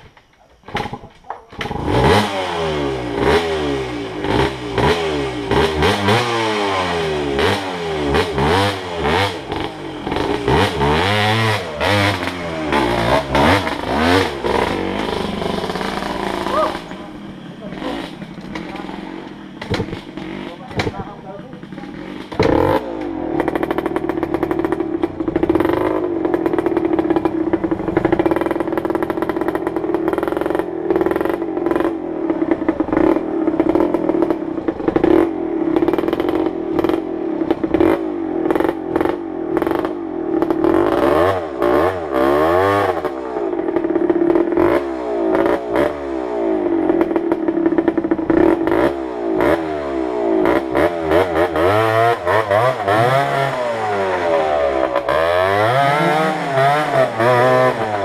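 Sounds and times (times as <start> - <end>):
dirt bike engines revving: 0.0 - 58.0.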